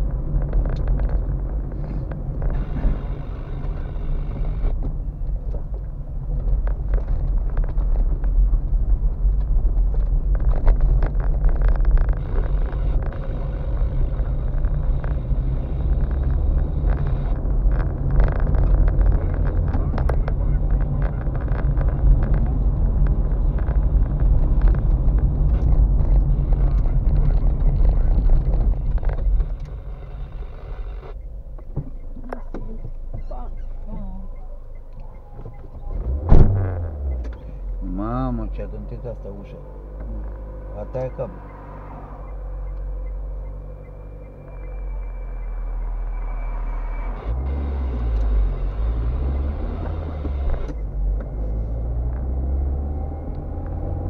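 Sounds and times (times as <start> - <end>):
knocks and rattles over bumps: 0.0 - 37.6
car engine and tyres rumbling: 0.0 - 54.0.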